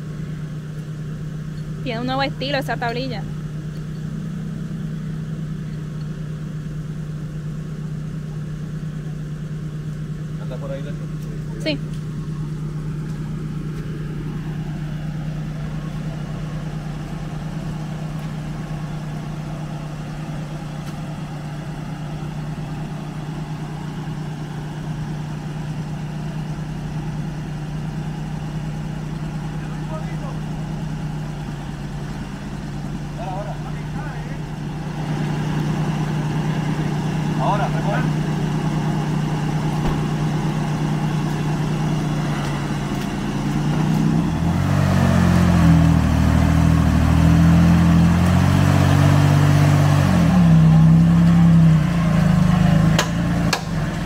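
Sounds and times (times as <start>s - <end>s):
truck engine idling: 0.0s - 54.0s
short knock: 39.8s - 40.1s.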